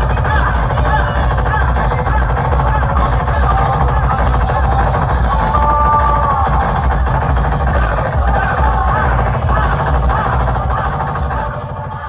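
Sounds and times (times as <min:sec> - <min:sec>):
electronic dance music with heavy bass: 0:00.0 - 0:12.0.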